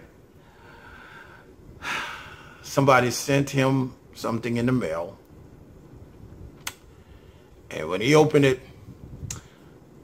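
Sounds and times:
man breathing: 0:00.3 - 0:02.7, 0:06.9 - 0:07.6.

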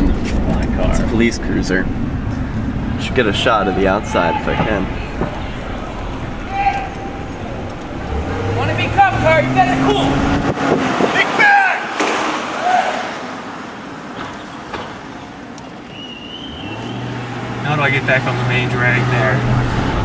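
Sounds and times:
indistinct voices: 0:00.0 - 0:12.0
car engine hum and road noise: 0:00.0 - 0:12.5, 0:13.3 - 0:20.0.

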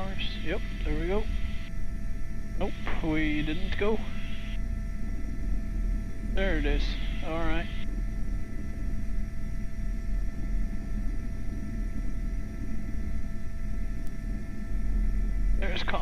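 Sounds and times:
helicopter rotor and turbine drone: 0:00.0 - 0:16.0
high whine tones: 0:00.0 - 0:16.0.

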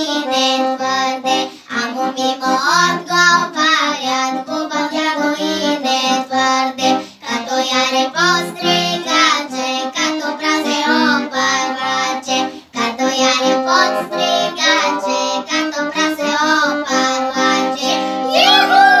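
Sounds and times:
girls singing folk song: 0:00.0 - 0:19.0
instrumental backing: 0:00.0 - 0:19.0.

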